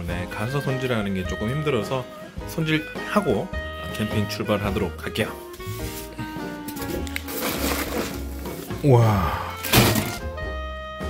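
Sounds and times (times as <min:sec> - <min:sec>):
background music: 0:00.0 - 0:11.0
plastic bag crinkling: 0:06.8 - 0:08.6.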